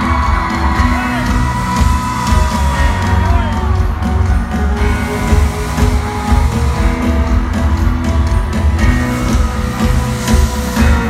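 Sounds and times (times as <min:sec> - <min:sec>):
live rock music: 0:00.0 - 0:11.0.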